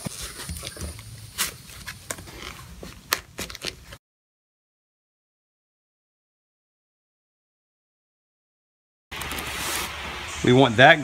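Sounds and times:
leather rubbing and scuffing: 0:00.0 - 0:04.0.

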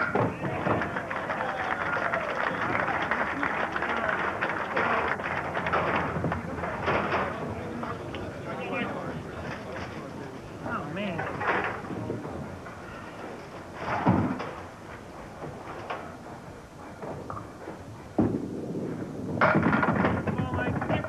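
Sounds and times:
crowd chatter: 0:00.0 - 0:21.0
loud clatter: 0:03.8 - 0:08.0, 0:18.2 - 0:21.0
bowling pins crashing down: 0:04.1 - 0:08.0, 0:13.8 - 0:14.7, 0:18.2 - 0:21.0.

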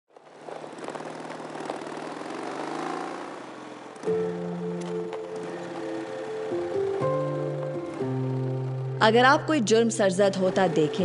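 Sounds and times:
small motorcycle engine running: 0:00.1 - 0:11.0.

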